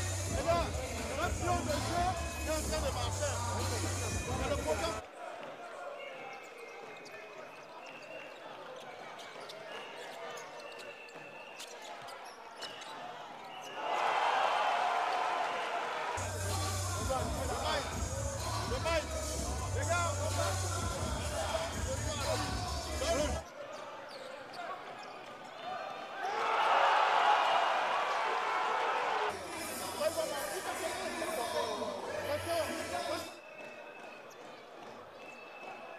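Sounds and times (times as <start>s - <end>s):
echoing voices: 0.0s - 11.2s, 12.9s - 27.1s, 27.8s - 35.9s
sneakers squeaking: 0.0s - 14.2s, 16.2s - 26.6s, 29.6s - 35.9s
sneakers squeaking on hardwood: 6.4s - 13.8s.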